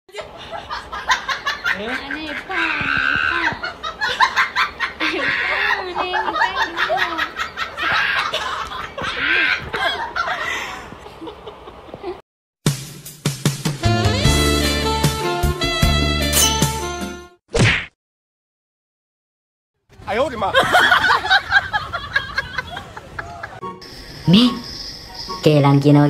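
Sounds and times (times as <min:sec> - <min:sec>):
background music: 0:12.7 - 0:17.4
comedic whack sound effect: 0:17.5 - 0:18.0.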